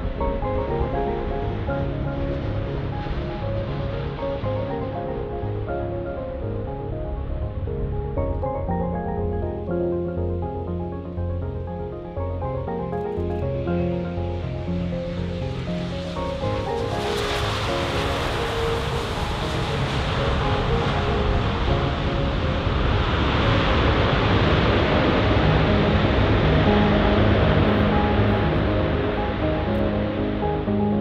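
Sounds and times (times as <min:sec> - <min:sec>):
background music: 0:00.0 - 0:31.0
jet engines roaring on landing: 0:16.2 - 0:29.0.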